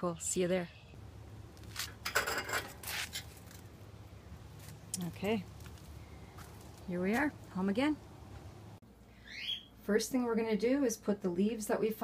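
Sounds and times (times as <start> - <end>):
low steady hum: 0.0 - 12.0
things being handled: 1.6 - 3.8.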